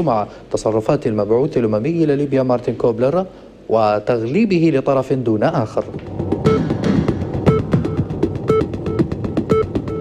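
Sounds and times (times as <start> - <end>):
background music with steady beat: 5.7 - 10.0.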